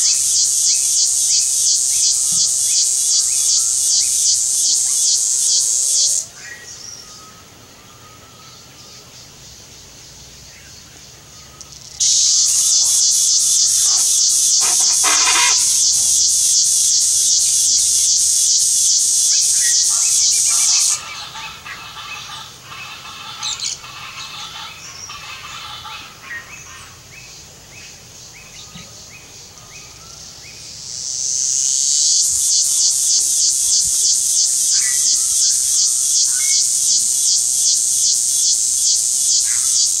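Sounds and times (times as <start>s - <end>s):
high-pitched insect buzz: 0.0s - 6.3s, 11.6s - 26.4s, 30.5s - 40.0s
short bird calls: 12.2s - 16.2s.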